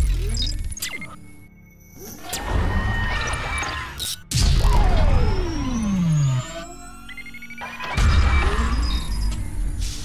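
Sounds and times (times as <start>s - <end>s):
cinematic intro music: 0.0s - 10.0s.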